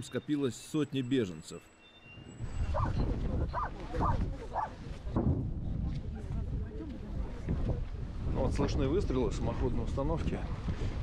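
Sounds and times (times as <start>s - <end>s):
wind rumble on microphone: 2.2s - 11.0s.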